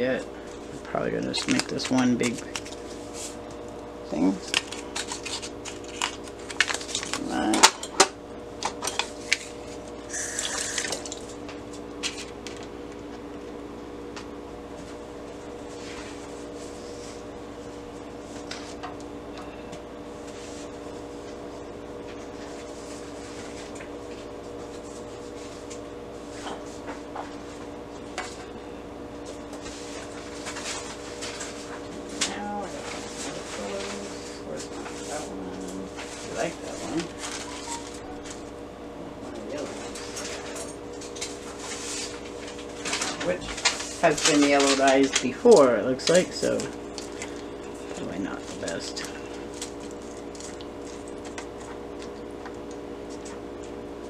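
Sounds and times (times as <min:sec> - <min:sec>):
low steady hum: 0:00.0 - 0:54.0
paper sheets handled: 0:01.2 - 0:03.5, 0:04.3 - 0:07.6, 0:10.6 - 0:12.6, 0:29.6 - 0:35.3, 0:35.9 - 0:38.6, 0:39.6 - 0:53.8
paper rustling: 0:01.3 - 0:03.4, 0:04.4 - 0:07.4, 0:29.6 - 0:35.2, 0:36.0 - 0:38.4, 0:39.7 - 0:47.5.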